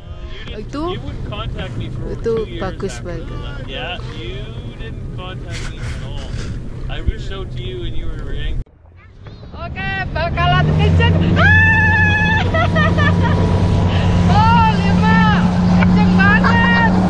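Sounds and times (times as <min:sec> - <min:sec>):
motorboat engine running: 0:10.6 - 0:17.0
people laughing and shrieking: 0:11.3 - 0:14.1.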